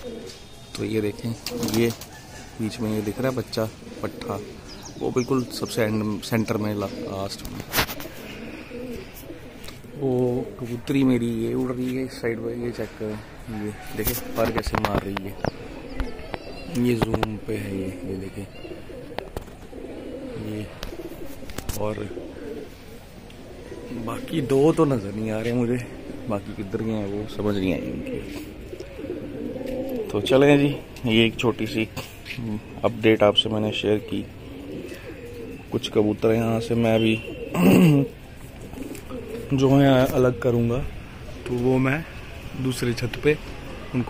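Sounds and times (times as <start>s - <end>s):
pigeons cooing: 0.0s - 44.0s.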